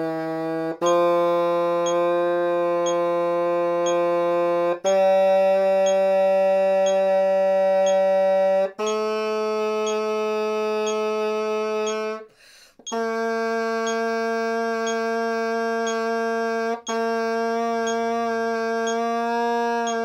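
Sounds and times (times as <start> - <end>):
tenoroon held notes: 0.0 - 20.0
soft ticking: 1.8 - 2.0, 3.8 - 4.0, 5.8 - 6.1, 6.8 - 7.1, 7.8 - 8.1, 8.8 - 9.1, 9.8 - 10.1, 10.8 - 11.2, 11.9 - 12.1, 13.8 - 14.1, 14.8 - 15.1, 15.8 - 16.1, 16.9 - 17.1, 17.8 - 18.2, 18.8 - 19.1.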